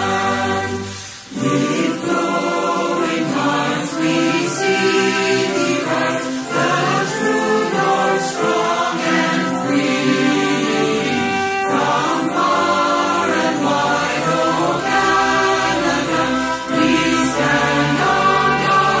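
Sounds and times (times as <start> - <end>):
choir singing sustained notes: 0.0 - 19.0.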